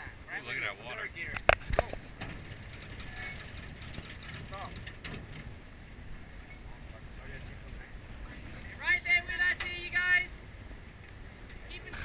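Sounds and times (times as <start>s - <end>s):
wind and water rushing: 0.0s - 12.0s.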